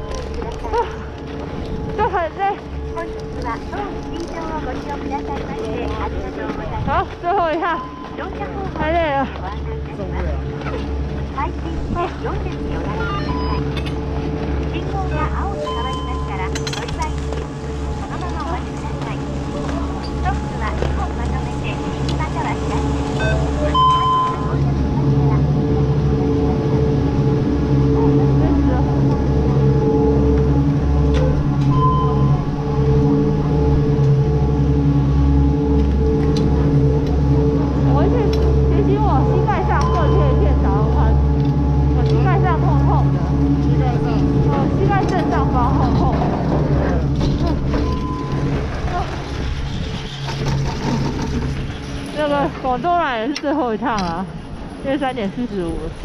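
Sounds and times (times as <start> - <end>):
chairlift machinery humming: 0.0 - 56.0
short electronic beeps: 12.9 - 13.8, 23.2 - 24.6, 31.7 - 32.5, 47.7 - 49.1
clicks and clatter: 15.8 - 21.4, 45.0 - 52.7.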